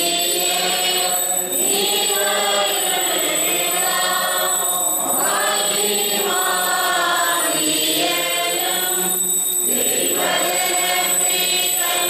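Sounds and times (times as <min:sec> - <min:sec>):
group singing a chant: 0:00.0 - 0:12.0.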